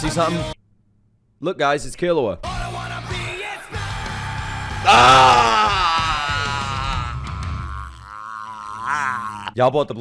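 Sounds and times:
heavy rock music: 0:02.5 - 0:07.6
man yelling: 0:02.5 - 0:07.9.

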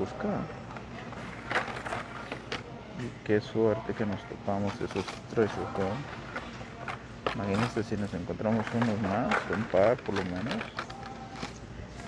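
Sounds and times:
plastic and card rustling: 0:00.6 - 0:02.6, 0:03.9 - 0:12.0.

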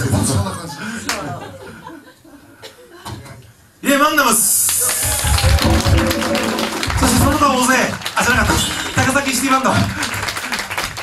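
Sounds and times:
live band playing: 0:05.2 - 0:08.0.

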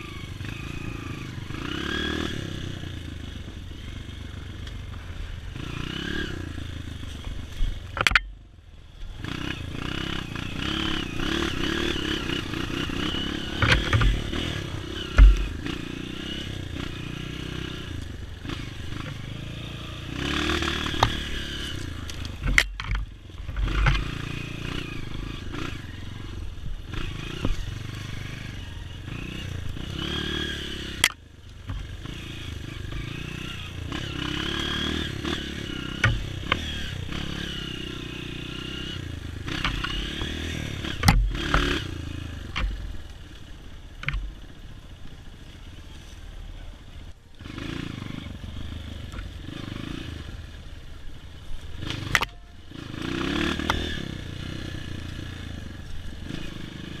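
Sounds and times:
dirt bike engine revving: 0:00.0 - 0:08.3, 0:09.0 - 0:44.6, 0:47.4 - 0:51.0, 0:51.6 - 0:57.0
sharp knocks and clatter: 0:08.0 - 0:08.4, 0:13.6 - 0:14.4, 0:15.1 - 0:15.6.

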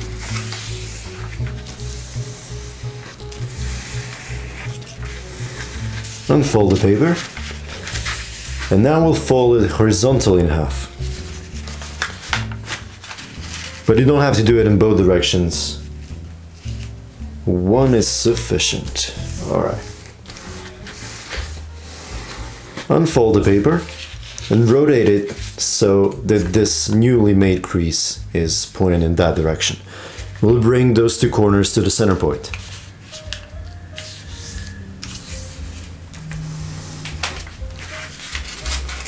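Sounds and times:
paper rustling: 0:00.0 - 0:17.0, 0:18.8 - 0:27.6, 0:29.5 - 0:39.0
soft background music: 0:00.0 - 0:39.0.

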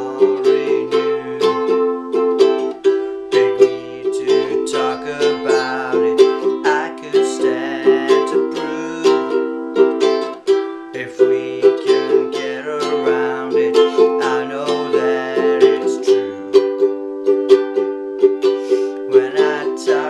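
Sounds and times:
man singing: 0:00.0 - 0:17.0, 0:18.4 - 0:20.0
ukulele strumming: 0:00.0 - 0:20.0.

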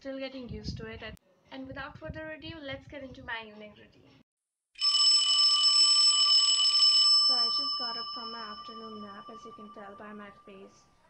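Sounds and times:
alarm clock bell ringing: 0:04.8 - 0:10.6.

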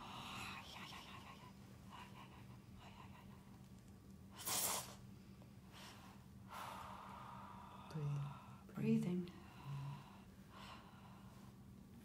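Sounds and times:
soft breaths: 0:04.3 - 0:12.0.

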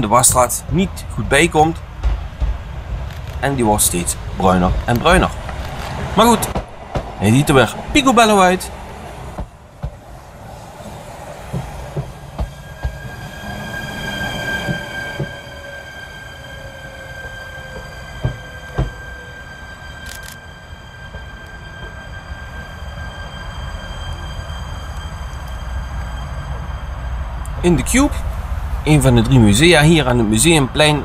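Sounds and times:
electric train whine: 0:00.0 - 0:31.0
low rumble: 0:00.5 - 0:16.4, 0:18.1 - 0:31.0
wheels knocking: 0:01.9 - 0:10.4, 0:11.4 - 0:15.5.

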